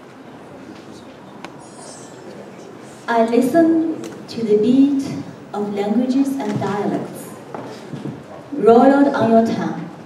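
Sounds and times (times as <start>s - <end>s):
room noise in a hall: 0.0s - 10.0s.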